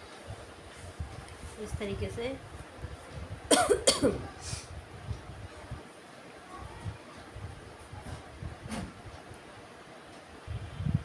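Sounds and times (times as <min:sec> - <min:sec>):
woman coughing: 0:03.5 - 0:04.3.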